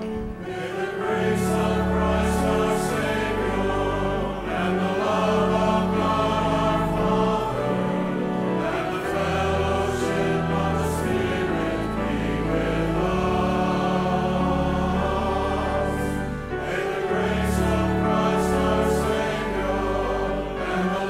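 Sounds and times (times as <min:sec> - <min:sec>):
choir singing a hymn: 0:00.0 - 0:21.0
pipe organ low notes: 0:00.0 - 0:21.0.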